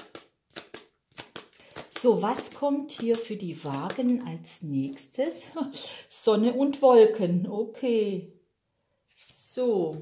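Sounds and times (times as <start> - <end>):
cards being shuffled: 0.0 - 5.4.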